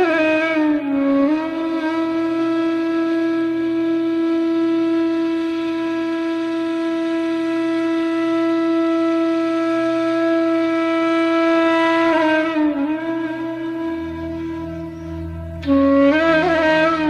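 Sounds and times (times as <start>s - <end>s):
flute holding long note: 0.0s - 17.0s
low drone: 12.1s - 17.0s.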